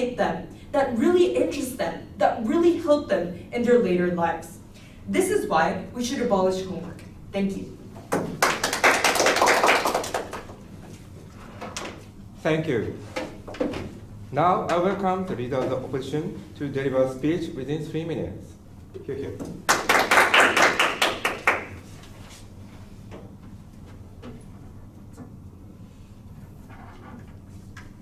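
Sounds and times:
people applauding: 8.3 - 10.6, 19.6 - 21.8.

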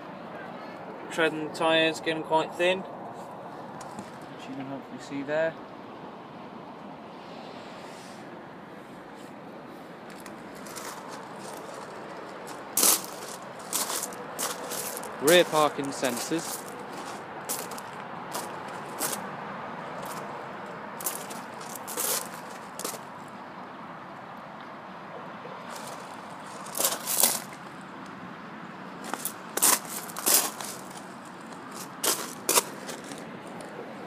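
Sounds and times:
steady outdoor hiss: 0.0 - 34.0
shoes crunching on gravel: 10.1 - 19.3, 19.9 - 20.4, 21.0 - 23.1, 25.7 - 27.6, 29.0 - 33.4.

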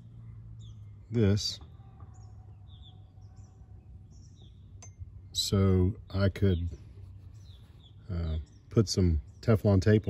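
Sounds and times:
faint bird chirps: 0.0 - 10.0.

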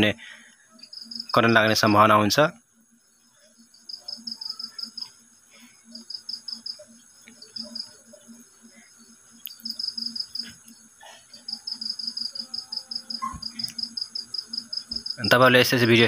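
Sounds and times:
cricket chirping: 0.0 - 16.0.

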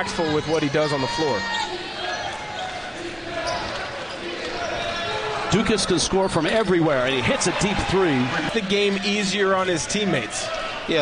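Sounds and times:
arena crowd noise and voices: 0.0 - 11.0.

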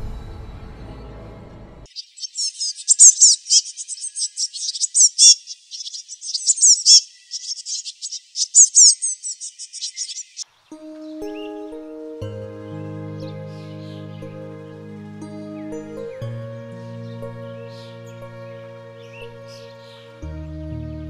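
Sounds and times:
birds chirping: 1.9 - 12.0, 12.6 - 20.3
gentle music: 10.5 - 21.0.

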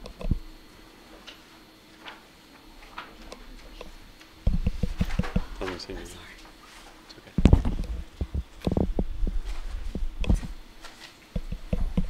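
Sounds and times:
microphone being handled: 4.4 - 5.6, 7.4 - 10.6, 11.4 - 12.0.

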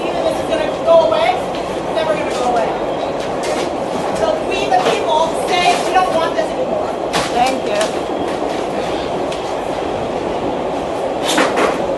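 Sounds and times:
subway train rumble and rattle: 0.0 - 11.9.

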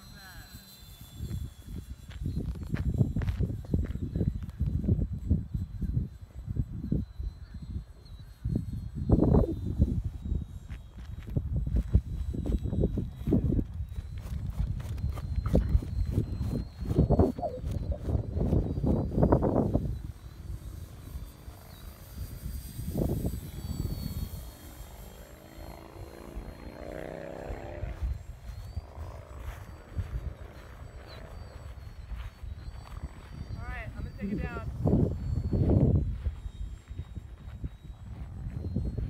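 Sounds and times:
model airplane motor whine: 0.0 - 39.0
wind buffeting microphone: 0.0 - 39.0.

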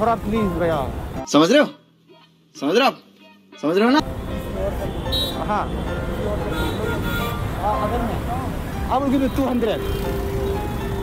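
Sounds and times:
road traffic rumble: 0.0 - 1.2, 4.0 - 11.0.

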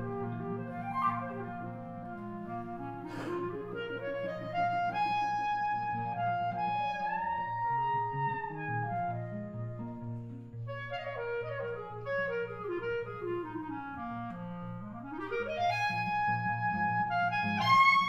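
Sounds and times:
clarinet swing jazz melody: 0.0 - 18.0.

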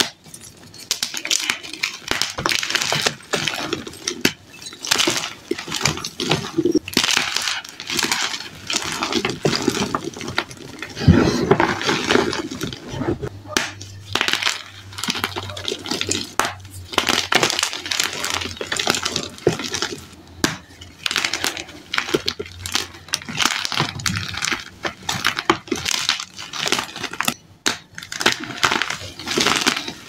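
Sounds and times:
chalk crunching and crumbling: 0.0 - 30.0.

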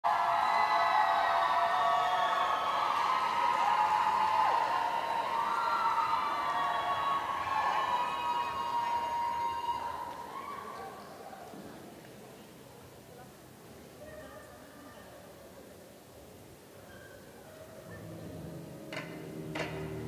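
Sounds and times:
audience cheering and shouting: 0.1 - 10.7.

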